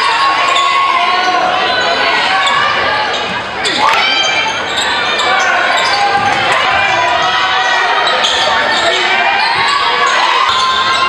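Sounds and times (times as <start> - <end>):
voices of players and spectators: 0.0 - 11.0.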